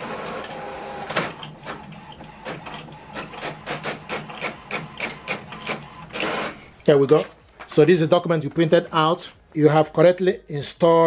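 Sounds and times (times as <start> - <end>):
inkjet printer printing strokes: 0.0 - 6.8
printer motor hum: 0.0 - 6.8.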